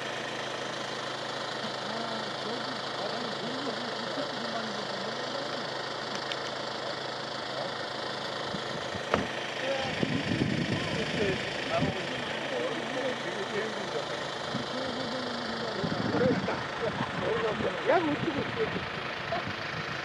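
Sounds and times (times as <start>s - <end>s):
engine idling: 0.0s - 20.0s
quiet voices: 9.6s - 19.8s.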